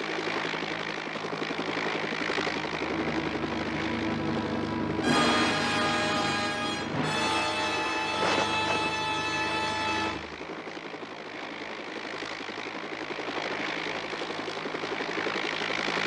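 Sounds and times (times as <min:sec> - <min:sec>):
mechanical engine rumble: 0:00.0 - 0:16.0
held music chord: 0:03.0 - 0:10.4.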